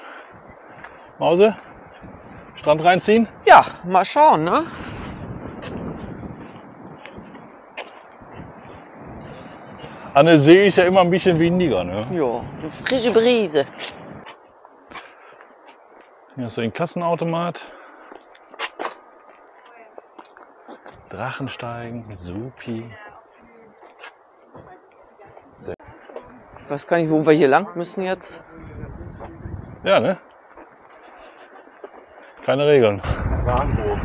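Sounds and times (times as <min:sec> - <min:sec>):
wind buffeting microphone: 0:00.0 - 0:16.8, 0:18.0 - 0:34.0
faint indistinct voices: 0:23.0 - 0:26.8.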